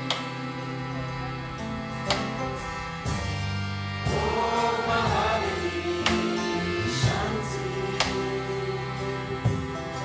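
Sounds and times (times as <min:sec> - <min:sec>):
acoustic band playing: 0:00.0 - 0:10.0
strummed guitar chords: 0:00.0 - 0:10.0
voices singing a chant: 0:04.0 - 0:10.0.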